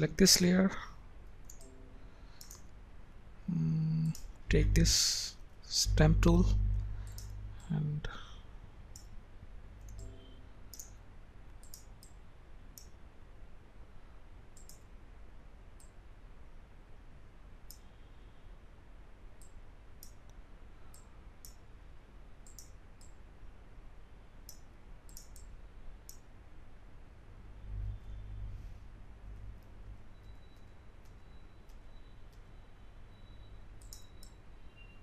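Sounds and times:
faint low hum: 0.0s - 35.0s
computer mouse clicking: 1.2s - 1.8s, 2.4s - 2.7s, 7.0s - 7.7s, 9.8s - 10.1s, 10.7s - 11.0s, 11.6s - 12.2s, 14.6s - 14.9s, 22.4s - 23.2s, 24.5s - 26.3s, 29.4s - 32.5s, 33.8s - 34.4s.

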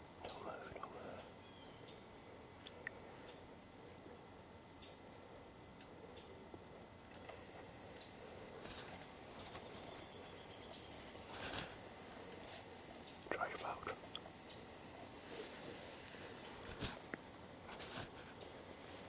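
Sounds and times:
soft whispering: 0.2s - 1.4s, 13.2s - 14.3s
faint rustling: 7.2s - 10.4s, 11.1s - 19.0s
high insect trill: 7.2s - 15.2s.

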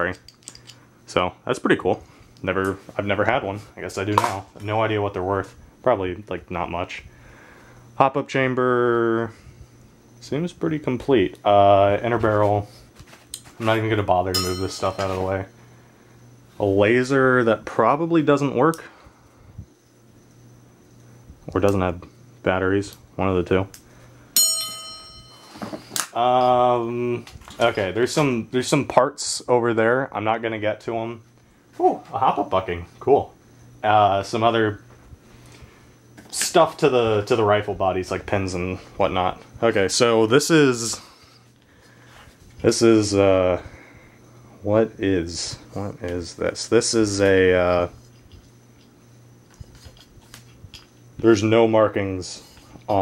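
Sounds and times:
metal part clinking and ringing: 0.0s - 0.8s, 14.3s - 15.3s, 24.4s - 26.6s
low steady hum: 0.0s - 53.0s.

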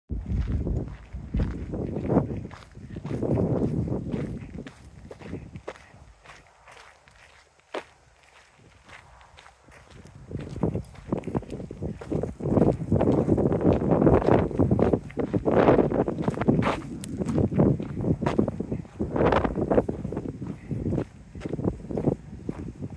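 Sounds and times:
footsteps on dirt trail: 0.1s - 22.9s.

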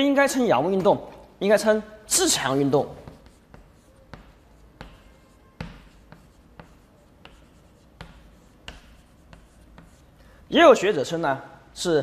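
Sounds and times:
chalk writing on blackboard: 2.5s - 10.6s
chalk tapping on board: 2.9s - 10.6s.

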